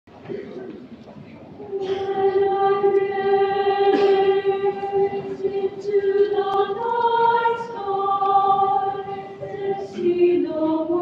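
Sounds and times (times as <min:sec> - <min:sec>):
choir singing a held note: 0:01.6 - 0:11.0.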